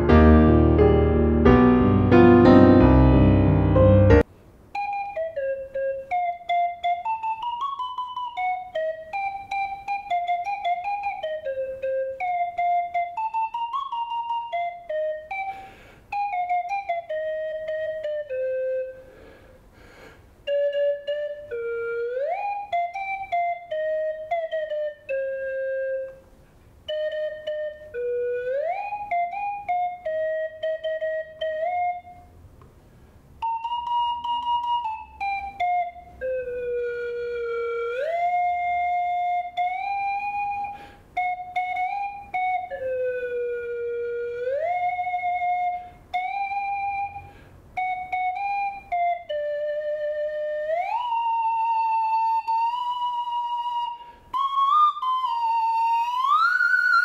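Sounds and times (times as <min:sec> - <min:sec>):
slide whistle melody: 0:00.0 - 0:32.4, 0:33.4 - 0:57.0.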